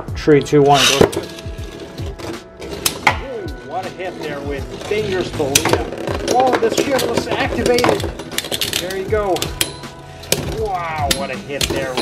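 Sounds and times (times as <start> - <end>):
background music: 0.0 - 12.0
tops clacking together: 0.4 - 3.4, 4.6 - 12.0.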